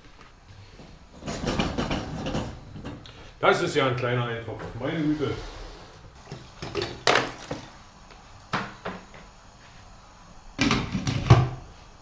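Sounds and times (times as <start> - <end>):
kitchenware knocking and clattering: 1.1 - 3.0.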